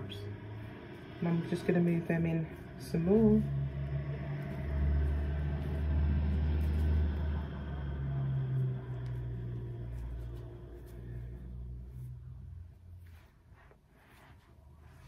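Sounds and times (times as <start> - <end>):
low steady rumble: 0.0 - 15.0.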